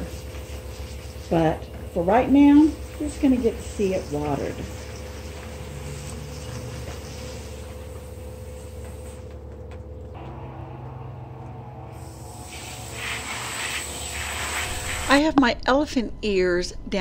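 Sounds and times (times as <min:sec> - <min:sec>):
hose nozzle spraying water: 0:12.0 - 0:15.2.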